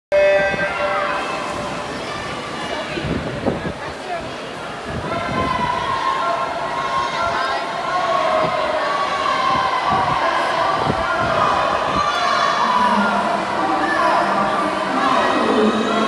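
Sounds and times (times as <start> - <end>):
crowd cheering and shouting: 0.2 - 3.3, 4.8 - 16.0.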